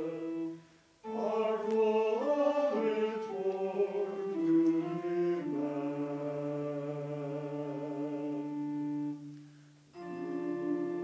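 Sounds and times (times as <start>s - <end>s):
choir humming a chord: 0.0s - 11.0s.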